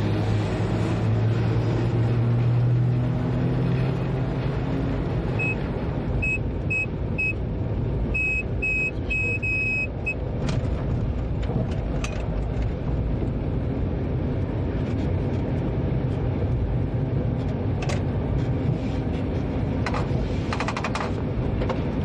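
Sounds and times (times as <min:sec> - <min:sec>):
short high electronic beeps: 0:08.2 - 0:09.9
train running rumble: 0:10.2 - 0:22.0.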